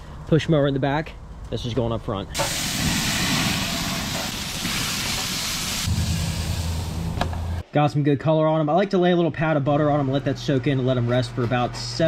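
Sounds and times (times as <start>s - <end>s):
steaks sizzling on a grill: 2.4s - 5.9s
steady low hum: 5.8s - 7.6s.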